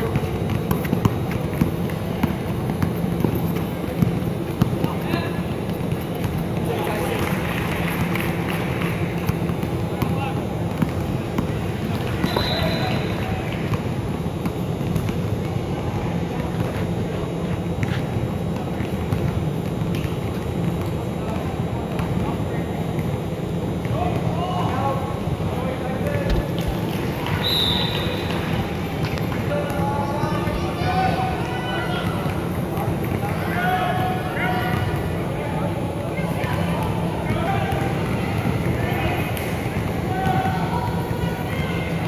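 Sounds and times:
basketball bouncing: 0:00.0 - 0:12.9, 0:14.4 - 0:15.6
hubbub of voices: 0:00.0 - 0:42.0.

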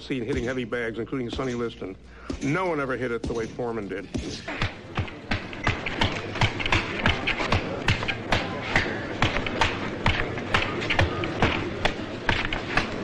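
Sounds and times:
punches thudding on a punching bag: 0:04.1 - 0:13.0.

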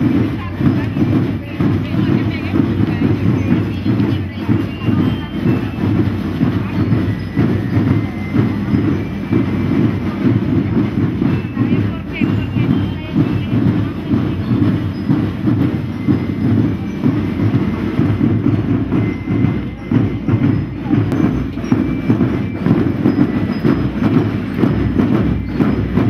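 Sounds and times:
parade drums beating: 0:00.0 - 0:26.0.

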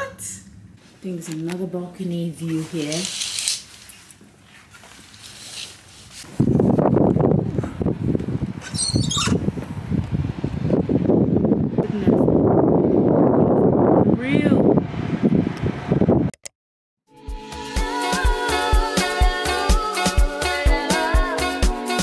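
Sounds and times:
gusty wind buffeting microphone: 0:06.2 - 0:16.4
bird chirping: 0:08.6 - 0:09.4.

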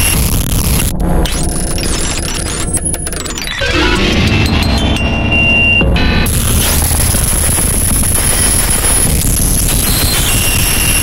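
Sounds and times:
electronic noise music: 0:00.0 - 0:11.0.

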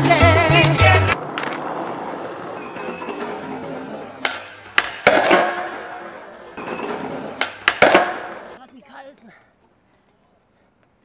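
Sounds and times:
skateboard wheels rolling on asphalt: 0:00.0 - 0:11.0
skateboard clacking on ground: 0:00.8 - 0:09.4.

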